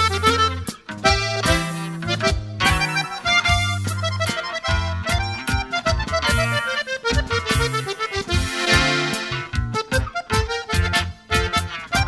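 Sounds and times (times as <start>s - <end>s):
accordion melody: 0.0s - 12.0s
bass and guitar rhythm: 0.0s - 12.0s.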